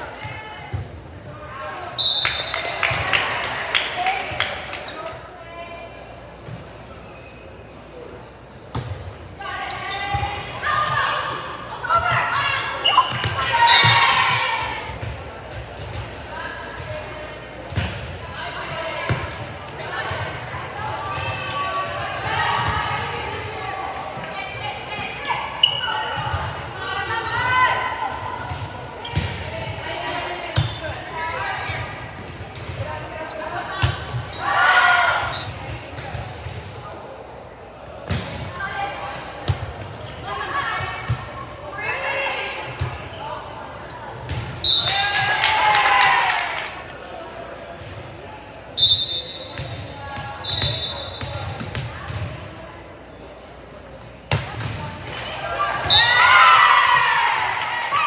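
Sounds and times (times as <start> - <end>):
spectators shouting and cheering: 44.6 - 47.0, 55.2 - 58.0.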